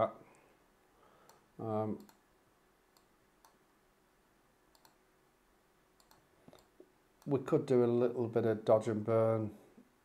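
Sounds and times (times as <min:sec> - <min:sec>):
faint computer mouse clicks: 0:01.2 - 0:01.4, 0:04.7 - 0:05.0, 0:06.0 - 0:07.4.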